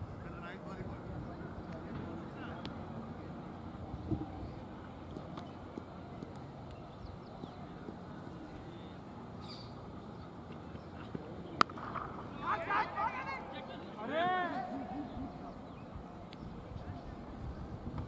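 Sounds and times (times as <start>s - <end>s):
faint distant voices: 0.0s - 18.0s.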